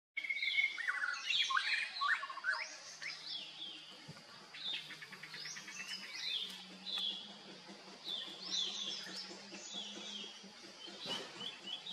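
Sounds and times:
birds singing and chirping: 0.2s - 11.9s.

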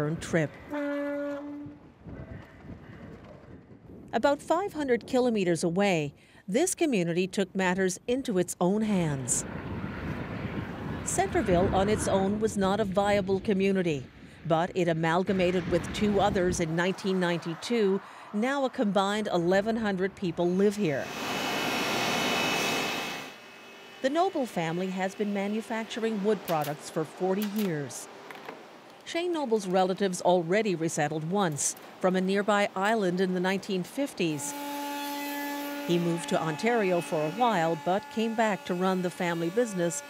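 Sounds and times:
faint wind: 0.0s - 34.6s
ferry horn blast: 0.5s - 1.9s, 34.0s - 40.0s.

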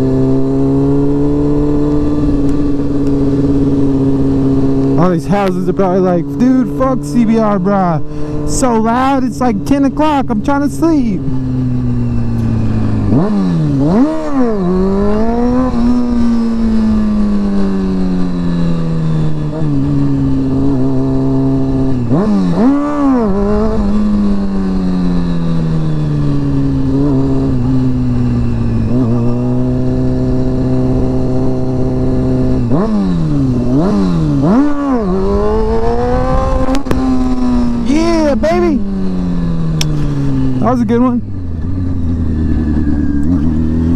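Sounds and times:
motorcycle engine revving: 0.0s - 43.9s
wind noise: 11.2s - 40.6s.

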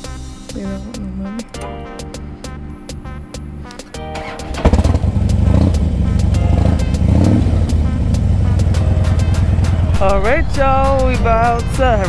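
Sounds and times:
background music: 0.0s - 12.0s
motorcycle engine starting and idling: 4.0s - 10.0s.

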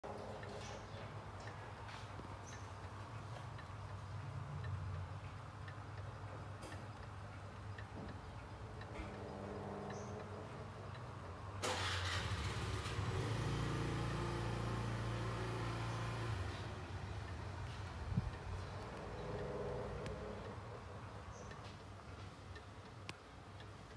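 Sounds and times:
clock ticking: 0.0s - 11.7s, 14.8s - 23.9s.

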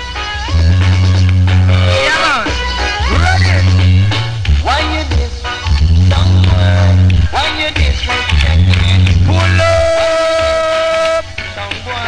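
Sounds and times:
heavy bass line: 0.0s - 11.6s
reggae music on sound system: 0.0s - 12.0s.

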